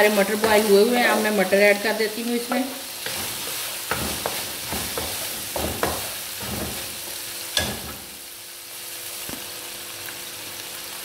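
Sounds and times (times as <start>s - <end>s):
food sizzling in a wok: 0.0s - 11.0s
wooden spatula scraping a pan: 2.4s - 8.1s.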